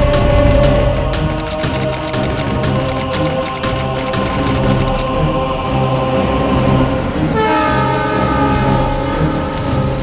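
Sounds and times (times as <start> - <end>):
train running: 0.0 - 10.0
train horn chord: 7.2 - 10.0.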